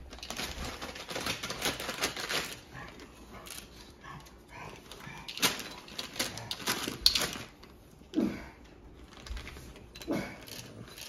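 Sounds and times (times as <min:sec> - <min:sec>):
paper bag crinkling: 0:00.0 - 0:03.9, 0:05.3 - 0:07.8, 0:09.0 - 0:11.0.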